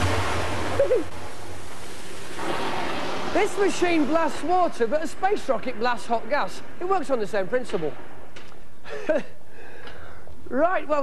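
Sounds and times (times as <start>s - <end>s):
water jet rushing hiss: 0.0s - 5.5s.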